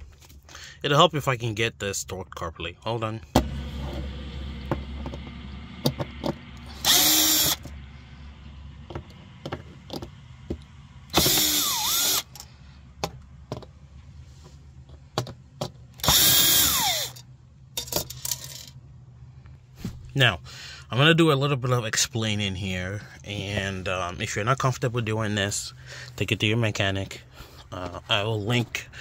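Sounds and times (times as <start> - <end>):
cordless drill whining: 6.6 - 7.8, 11.1 - 12.4, 16.0 - 17.2.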